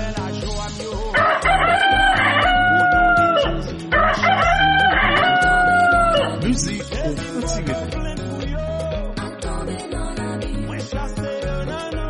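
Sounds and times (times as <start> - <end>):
music with steady beat: 0.0 - 12.0
rooster crowing: 1.2 - 6.4.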